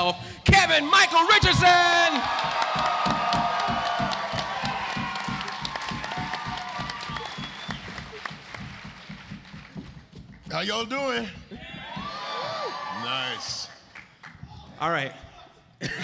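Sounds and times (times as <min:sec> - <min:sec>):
audience applauding and cheering: 0:00.9 - 0:10.3, 0:11.6 - 0:15.0.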